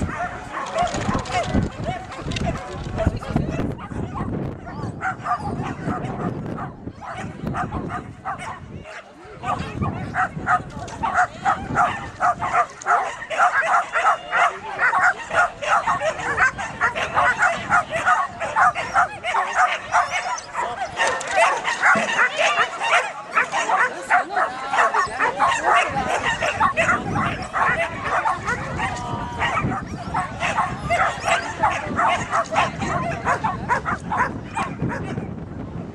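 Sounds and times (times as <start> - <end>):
dog barking rapidly: 0.0 - 3.2, 5.0 - 8.6, 9.4 - 35.3.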